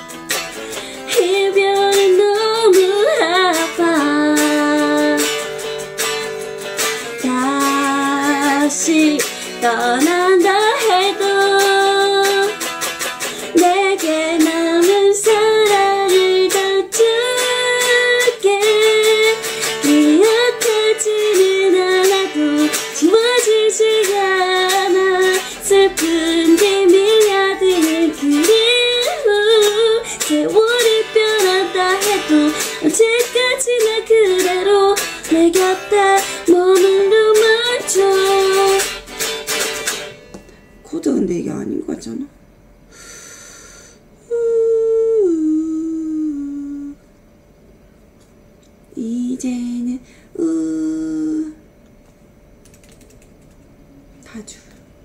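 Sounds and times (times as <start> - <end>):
strummed guitar: 0.0 - 42.2
woman singing a ballad: 0.8 - 5.6, 7.0 - 39.0, 44.3 - 47.0, 48.9 - 51.6.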